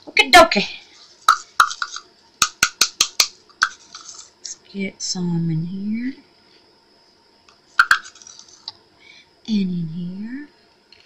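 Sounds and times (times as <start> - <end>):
glass pieces rattling: 3.6 - 4.3, 7.9 - 8.7.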